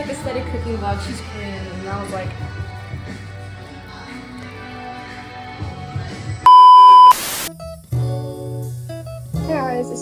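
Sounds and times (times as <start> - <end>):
electronic bleep tone: 6.5 - 7.5
soft background music: 7.6 - 10.0.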